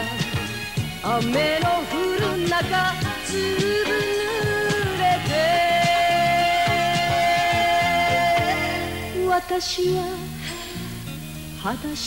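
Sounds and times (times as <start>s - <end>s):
woman singing with band: 1.0s - 10.6s.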